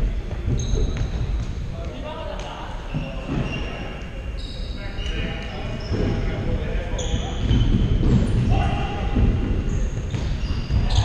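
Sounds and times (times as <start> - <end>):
sneakers squeaking: 0.0 - 11.0.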